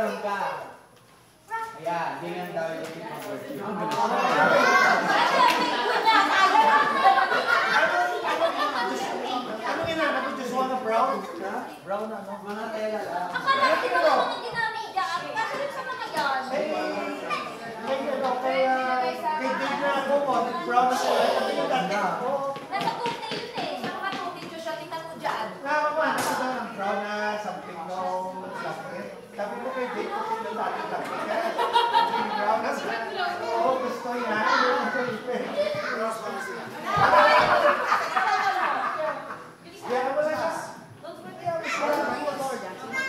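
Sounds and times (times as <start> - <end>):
people chattering: 0.0 - 43.0
children's voices: 3.2 - 10.4, 13.4 - 25.6, 28.1 - 40.1, 40.8 - 43.0.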